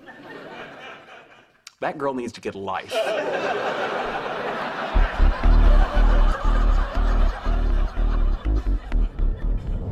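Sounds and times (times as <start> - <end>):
audience laughter: 0.0 - 1.6, 2.9 - 9.9.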